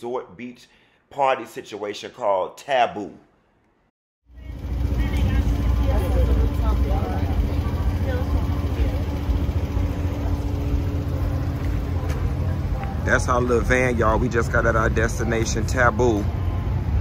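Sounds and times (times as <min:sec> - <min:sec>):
van engine running: 0:04.3 - 0:17.0.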